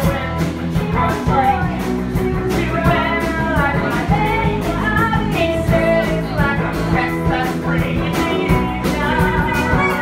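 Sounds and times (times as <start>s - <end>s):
driving drum beat: 0.0s - 10.0s
guitar: 0.0s - 10.0s
person singing: 0.0s - 10.0s.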